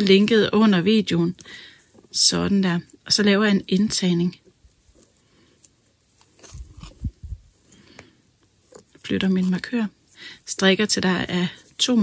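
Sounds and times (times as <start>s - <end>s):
knitting needles clicking: 0.0s - 12.0s.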